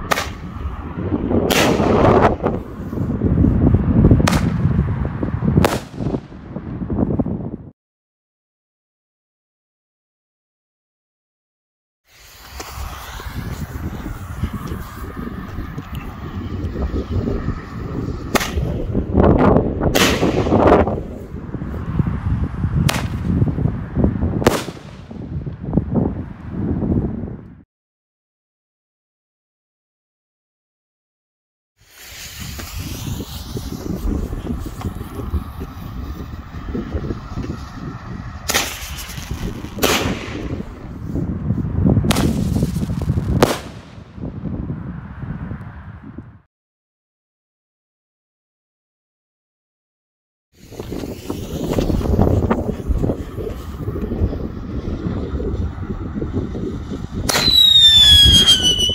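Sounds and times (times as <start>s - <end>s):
firework bangs: 0.0s - 2.8s, 4.2s - 6.9s, 12.1s - 19.1s, 19.8s - 21.2s, 22.8s - 25.6s, 31.9s - 41.0s, 42.0s - 44.4s, 57.1s - 58.9s
rushing noise: 12.1s - 25.3s.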